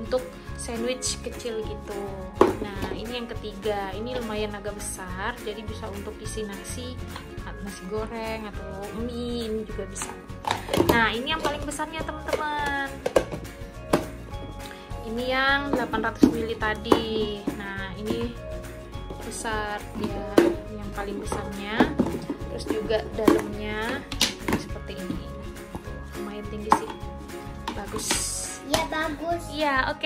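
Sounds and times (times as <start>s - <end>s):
background music: 0.0s - 30.0s
plastic containers clacking: 9.9s - 14.5s, 15.6s - 18.4s, 19.1s - 26.0s, 26.6s - 29.2s.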